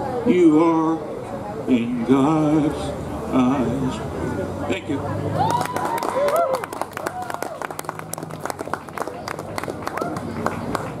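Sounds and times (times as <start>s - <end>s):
people talking: 0.0s - 5.8s
audience clapping: 5.4s - 11.0s.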